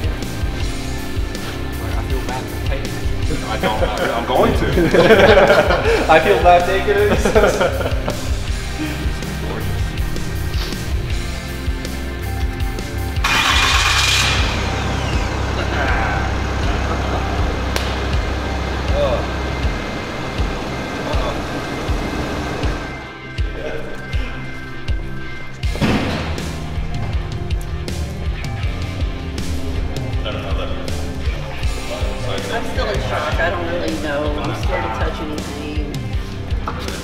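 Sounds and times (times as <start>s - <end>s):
background music: 0.0s - 37.0s
diesel engine cranking and starting: 13.0s - 23.1s.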